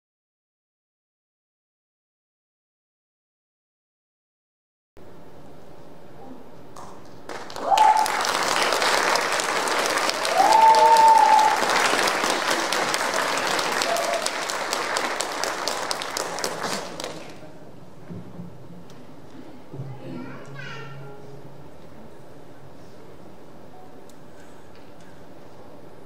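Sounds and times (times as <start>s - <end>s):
audience applauding: 7.3s - 17.5s
shouted cheers: 7.6s - 8.4s, 10.1s - 12.2s, 13.6s - 14.5s.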